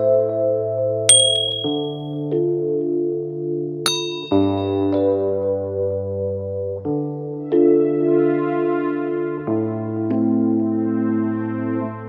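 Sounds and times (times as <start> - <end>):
keyboard chords background music: 0.0 - 1.2, 2.2 - 3.8, 4.7 - 12.0
high button-tap ding: 1.1 - 2.0, 3.9 - 4.8.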